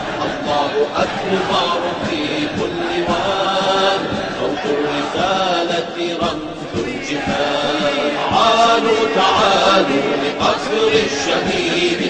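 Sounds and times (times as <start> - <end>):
male chorus chanting: 0.0 - 12.0.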